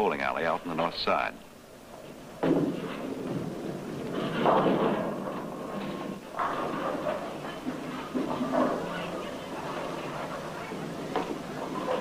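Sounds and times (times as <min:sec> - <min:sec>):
bowling balls rolling: 0:00.0 - 0:12.0
bowling pins crashing: 0:02.2 - 0:12.0.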